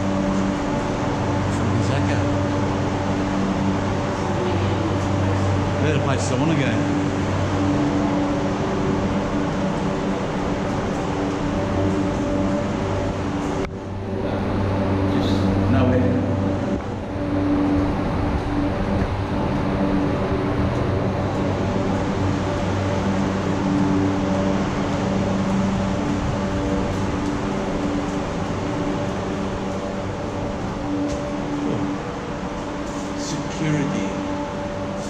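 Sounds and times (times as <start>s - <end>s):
steady machinery hum: 0.0s - 35.0s.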